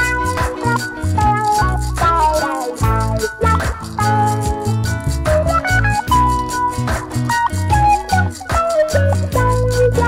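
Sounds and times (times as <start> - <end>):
electric guitar melody: 0.0 - 10.0
looped bass line: 0.0 - 10.0
shaker percussion rhythm: 0.0 - 10.0.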